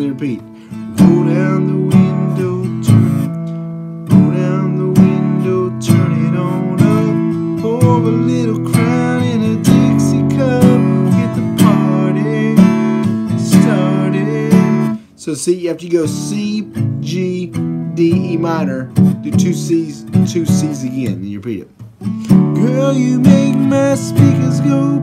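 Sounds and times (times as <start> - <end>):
acoustic guitar strummed: 0.0 - 25.0.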